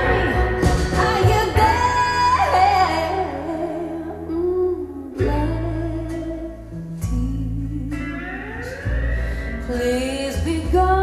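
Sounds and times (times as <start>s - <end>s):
deep bass notes: 0.0s - 11.0s
plucked guitar: 0.0s - 11.0s
woman singing slow ballad: 0.0s - 11.0s.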